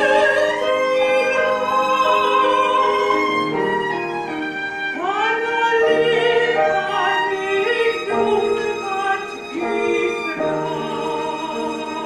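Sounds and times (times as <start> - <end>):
piano: 0.0 - 12.0
violin: 0.0 - 12.0
woman singing classical song: 0.0 - 12.0.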